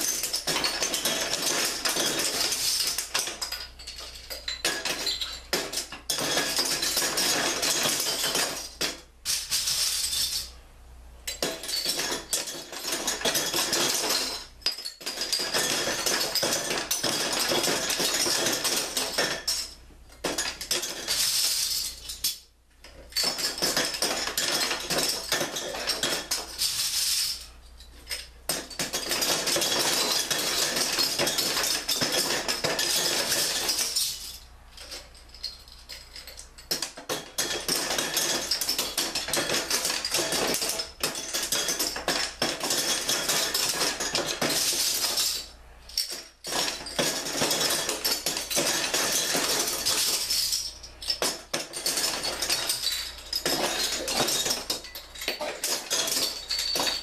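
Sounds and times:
metal bottle caps clattering: 0:00.0 - 0:10.6, 0:11.3 - 0:57.0.

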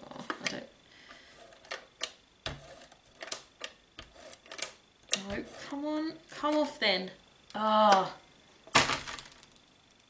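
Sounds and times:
tools and papers clicking and knocking: 0:01.4 - 0:05.7.

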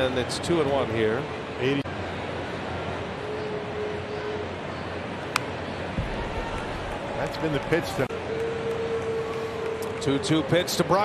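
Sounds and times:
low thump: 0:06.0 - 0:06.8.

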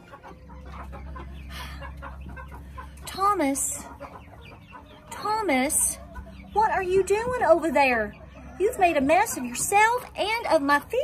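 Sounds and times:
chickens clucking and calling: 0:00.0 - 0:11.0.

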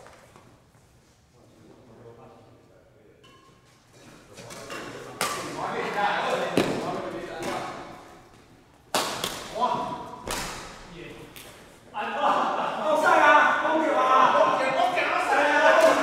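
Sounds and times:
rackets striking shuttlecock: 0:04.4 - 0:05.6, 0:08.9 - 0:09.6
players calling: 0:11.9 - 0:16.0.

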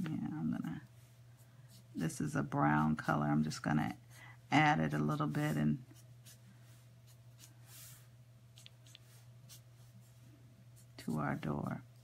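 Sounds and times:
low room hum: 0:00.0 - 0:12.0
marker strokes on thin paper: 0:00.9 - 0:04.0, 0:04.8 - 0:12.0.

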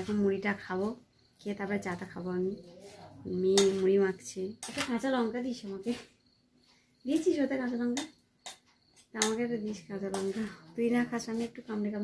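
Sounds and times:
woman talking: 0:00.0 - 0:06.2, 0:07.0 - 0:08.1, 0:09.1 - 0:12.0
cutlery clinking on a dish: 0:03.5 - 0:03.9, 0:10.1 - 0:10.5.

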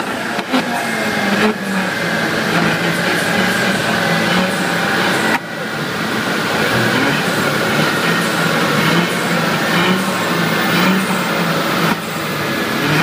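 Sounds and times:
car engine and exhaust under load: 0:00.0 - 0:13.0.

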